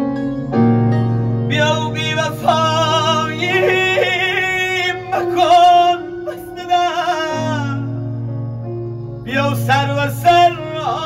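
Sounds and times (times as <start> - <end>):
instrumental backing music: 0.0 - 11.0
man singing: 1.5 - 8.1, 9.2 - 11.0.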